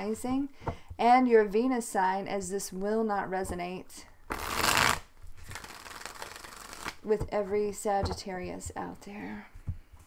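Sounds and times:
cards being shuffled: 4.3 - 7.1.

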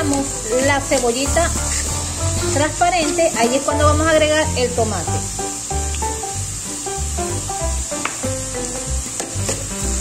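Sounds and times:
background music: 0.0 - 10.0
vegetables sizzling in oil: 0.0 - 10.0.

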